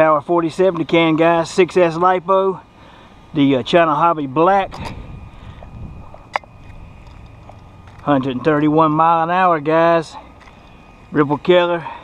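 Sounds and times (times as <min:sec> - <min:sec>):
wind rumble on microphone: 0:04.6 - 0:08.6.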